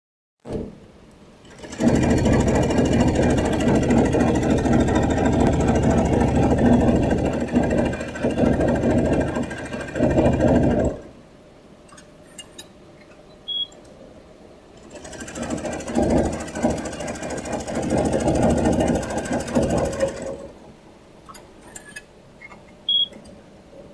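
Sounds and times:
embroidery machine stitching: 1.4 - 11.1, 14.8 - 20.6
machine clicks: 11.9 - 14.0.

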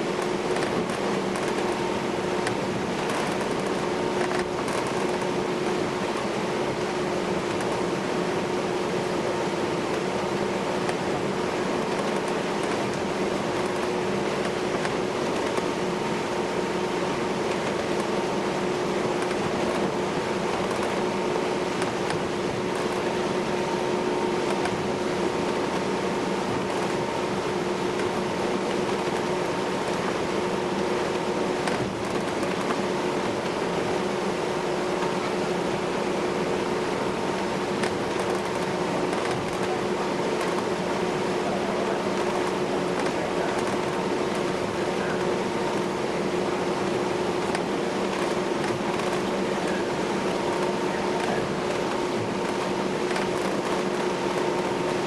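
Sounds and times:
ferry engine and ventilation drone: 0.0 - 55.0.

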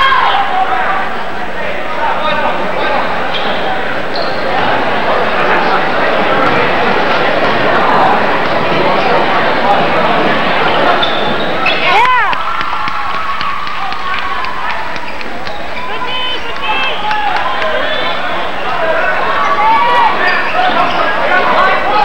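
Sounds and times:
gym crowd voices: 0.0 - 22.0
sneaker squeaks: 3.3 - 4.5, 10.8 - 12.0, 19.4 - 21.4.

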